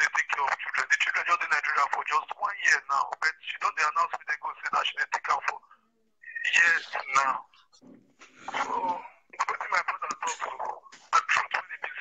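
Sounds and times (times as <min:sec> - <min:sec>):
person speaking: 0:00.0 - 0:12.0.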